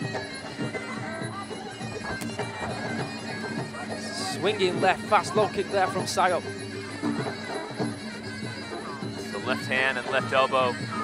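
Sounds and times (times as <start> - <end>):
drums: 0.0 - 11.0.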